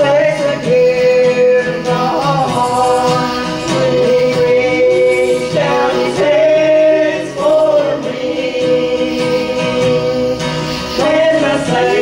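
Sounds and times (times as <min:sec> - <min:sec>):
acoustic guitar: 0:00.0 - 0:12.0
group singing in harmony: 0:00.0 - 0:12.0.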